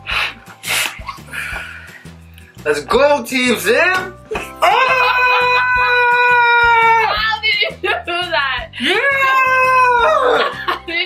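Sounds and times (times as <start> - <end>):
background music with steady beat: 0.0 - 11.0.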